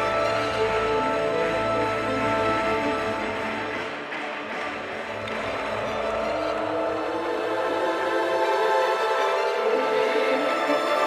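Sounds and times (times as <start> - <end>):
music of long held chords: 0.0 - 11.0.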